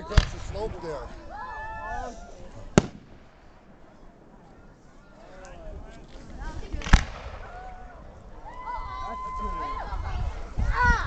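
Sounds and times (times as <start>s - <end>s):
firework shells banging: 2.7s - 3.8s.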